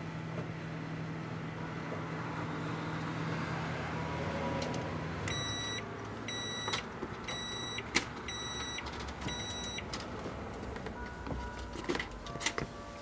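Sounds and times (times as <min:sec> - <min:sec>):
microwave oven humming: 0:00.0 - 0:04.2, 0:05.0 - 0:10.0
microwave timer beeps: 0:05.3 - 0:09.9.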